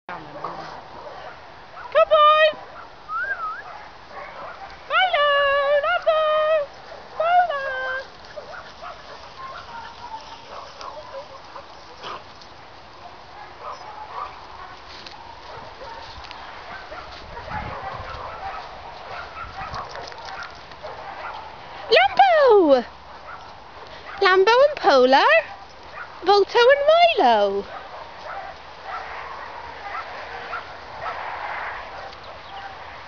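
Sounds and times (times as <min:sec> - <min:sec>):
dogs running in grass: 0:03.8 - 0:33.0
dog yelps: 0:16.7 - 0:22.6, 0:27.7 - 0:31.2.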